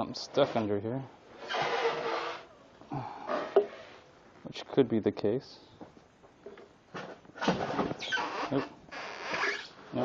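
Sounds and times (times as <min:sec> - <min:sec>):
styrofoam and cardboard scraping: 0:01.4 - 0:02.5.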